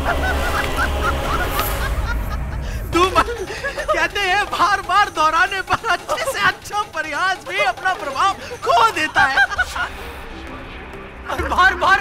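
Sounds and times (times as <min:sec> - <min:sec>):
man laughing loudly: 0:00.0 - 0:10.1
background music drone: 0:00.0 - 0:12.0.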